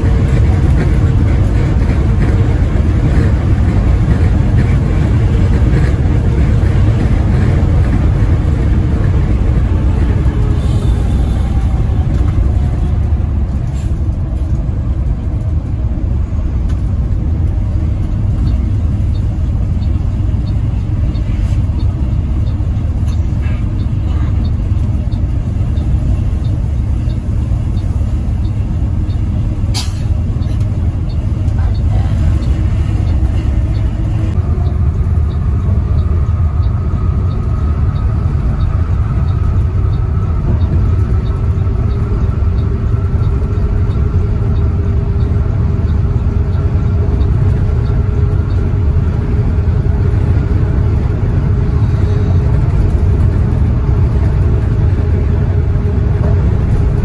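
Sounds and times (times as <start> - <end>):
bus engine and road rumble: 0.0 - 57.0
faint regular ticking: 16.7 - 29.3, 34.6 - 48.9.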